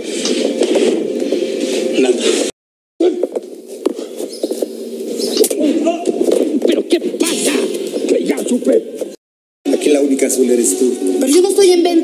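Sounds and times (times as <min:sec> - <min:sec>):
men scuffling: 0:00.0 - 0:09.2
muffled low voices: 0:05.4 - 0:11.9.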